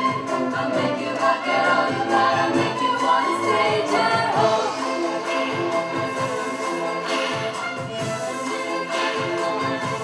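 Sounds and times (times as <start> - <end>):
choir singing: 0.0 - 10.0
violins bowing: 0.0 - 10.0.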